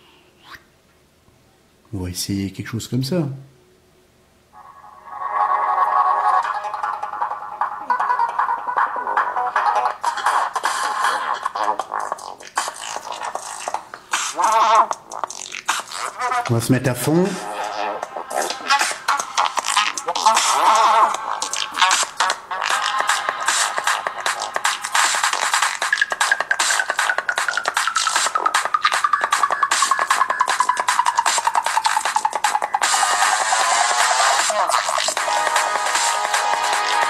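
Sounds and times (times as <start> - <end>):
music with busy beat from phone speakers: 5.9 - 37.0.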